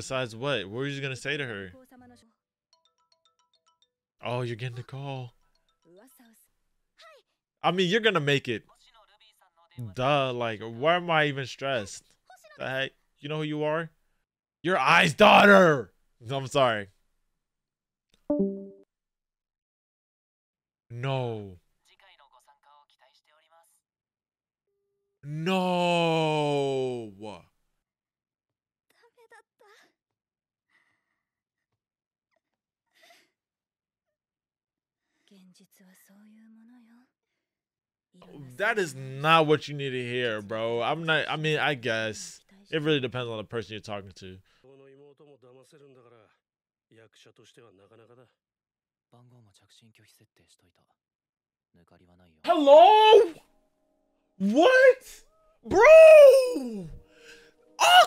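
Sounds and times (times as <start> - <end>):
smartphone ringtone beeps: 18.3 - 18.8.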